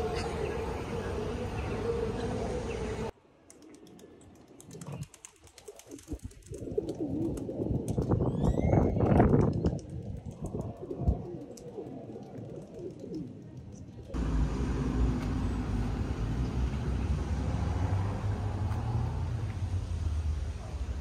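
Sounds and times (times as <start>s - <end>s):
pigeons cooing: 0.0s - 3.1s, 10.4s - 13.7s
rising bird chirp: 8.2s - 9.1s.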